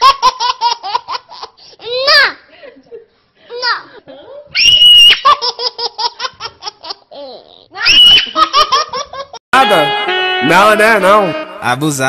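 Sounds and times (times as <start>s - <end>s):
loud high-pitched laughter: 7.8s - 9.3s
music: 9.6s - 12.0s.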